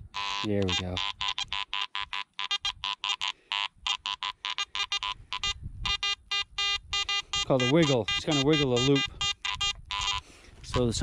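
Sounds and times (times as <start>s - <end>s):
metal detector beeping: 0.1s - 11.0s.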